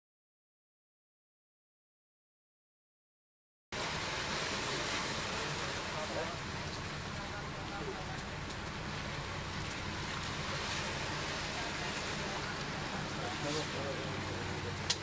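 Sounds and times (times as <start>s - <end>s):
low even hum: 3.8s - 15.0s.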